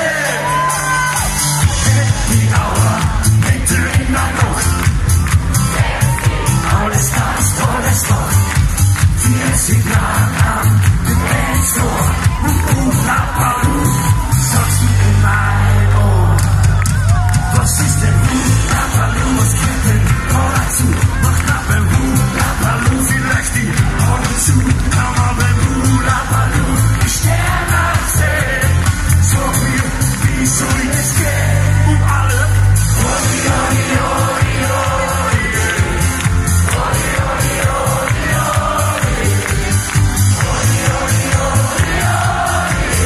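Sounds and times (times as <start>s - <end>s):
man singing into microphone: 0.0s - 0.9s, 1.6s - 4.8s, 9.1s - 36.2s
crowd noise: 0.0s - 43.0s
live band with strong bass: 0.0s - 43.0s.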